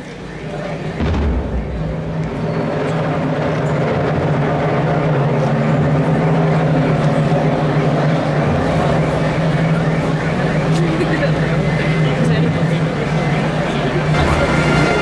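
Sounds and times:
crowd chatter: 0.0s - 15.0s
low engine hum: 0.0s - 15.0s.

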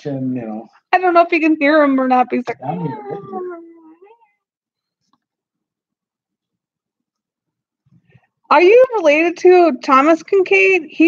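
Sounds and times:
dog howling: 2.8s - 4.2s.

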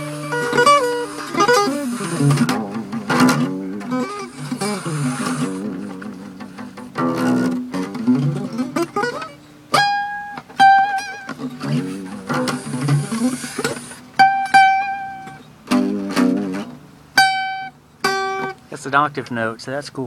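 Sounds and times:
acoustic guitar arpeggios: 0.0s - 20.0s.

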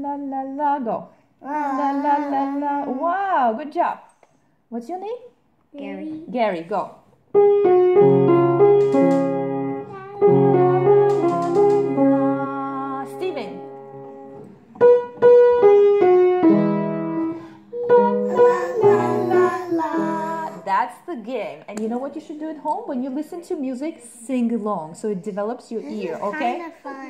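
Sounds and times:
piano playing chords and melody: 7.3s - 20.6s.

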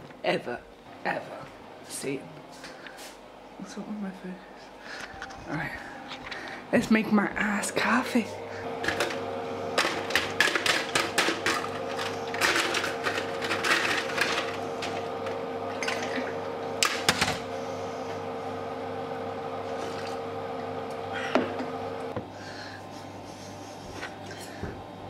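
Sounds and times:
ice maker humming: 4.5s - 23.3s
ice cubes rattling and clattering: 9.8s - 14.6s.

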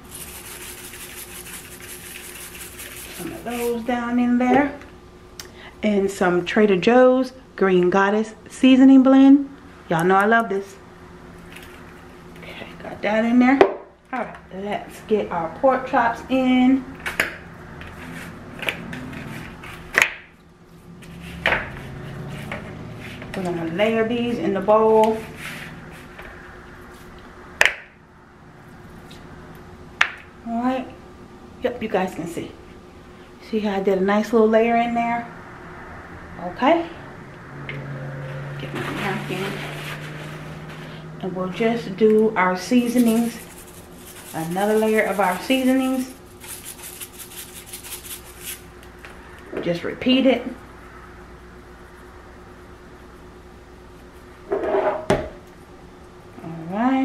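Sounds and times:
spice shaker rattling: 0.0s - 3.7s, 42.8s - 48.7s.

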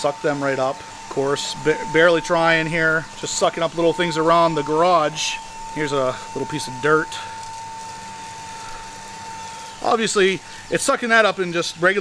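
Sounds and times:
handheld vacuum whine: 0.0s - 12.0s
air rushing through nozzle: 0.8s - 10.9s.

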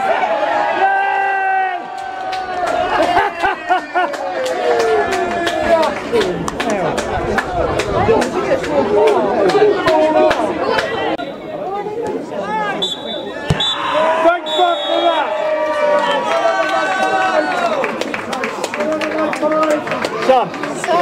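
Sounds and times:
people talking and calling out: 0.8s - 21.0s.

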